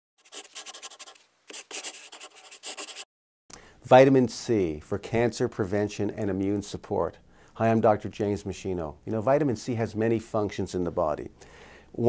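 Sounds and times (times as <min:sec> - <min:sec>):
rapid dry scratching: 0:00.2 - 0:03.1.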